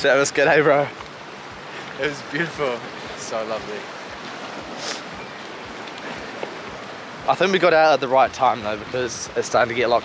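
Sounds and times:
surf breaking: 0.0 - 10.0
wind: 0.0 - 10.0
wind buffeting microphone: 0.0 - 10.0.

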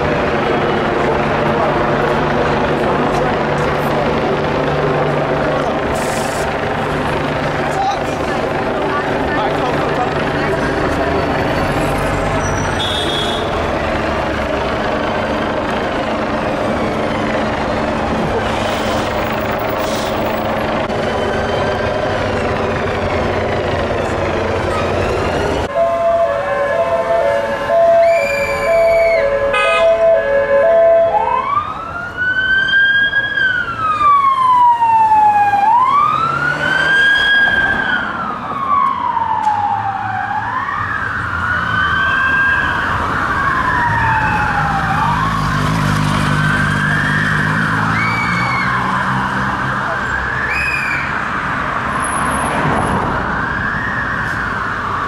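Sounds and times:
large vehicle engine running: 0.0 - 25.8
emergency vehicle siren: 0.0 - 55.0.

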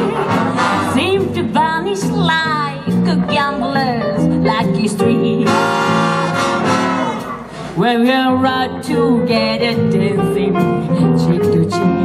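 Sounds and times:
brass and saxophones holding chord: 0.0 - 1.0, 5.4 - 7.5
big band jazz orchestra: 0.0 - 12.0.

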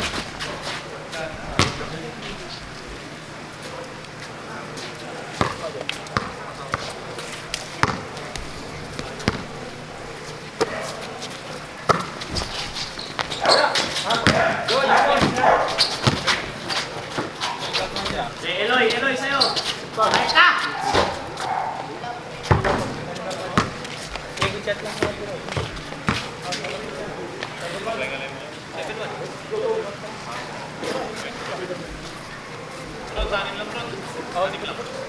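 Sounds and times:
basketball dribbling on hard court: 1.6 - 1.8, 5.4 - 6.8, 7.8 - 8.1, 9.0 - 9.5, 14.2 - 14.4.

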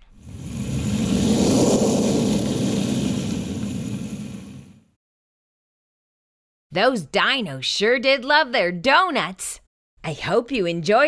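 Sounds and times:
rumbling whoosh: 0.0 - 4.9.

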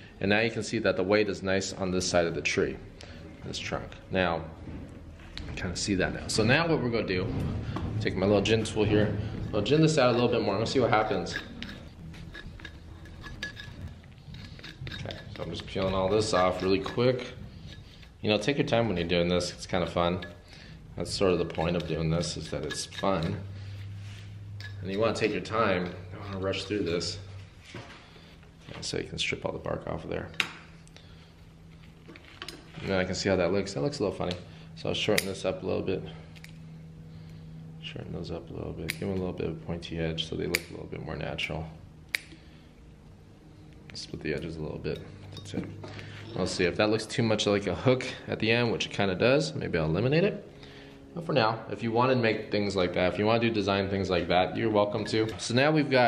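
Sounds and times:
low steady hum: 0.0 - 56.0
pliers clicking peeling bark: 35.1 - 35.4, 38.8 - 39.2, 40.5 - 40.8, 42.1 - 42.4.

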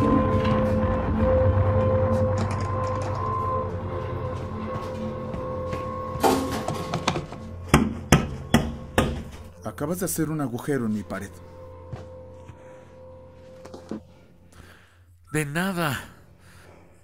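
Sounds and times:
low music drone: 0.0 - 17.0
hammer striking plaster wall: 6.3 - 9.3.

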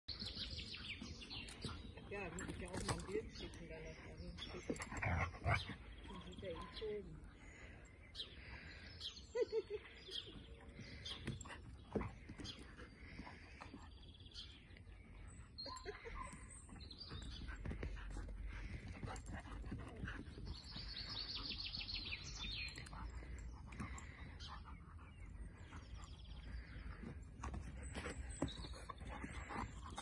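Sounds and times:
birds chirping: 0.1 - 30.0.

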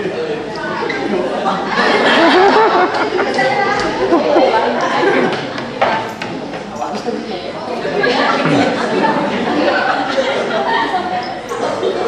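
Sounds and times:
people chattering in echoing hall: 0.0 - 12.0.

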